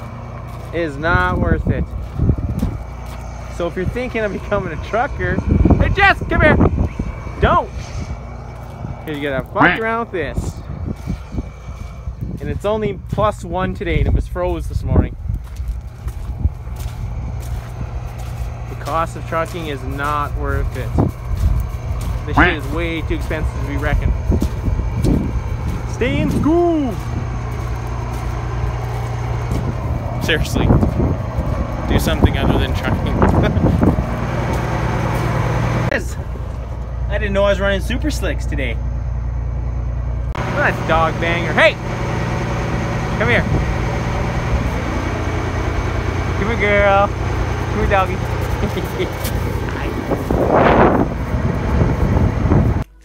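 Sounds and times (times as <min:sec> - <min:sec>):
wind buffeting microphone: 0:00.0 - 0:37.1, 0:40.4 - 0:52.9
diesel engine idling: 0:00.0 - 0:53.0.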